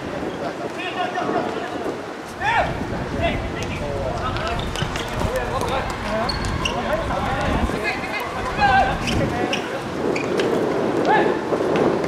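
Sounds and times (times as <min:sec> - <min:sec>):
footballers calling out: 0:00.0 - 0:10.4.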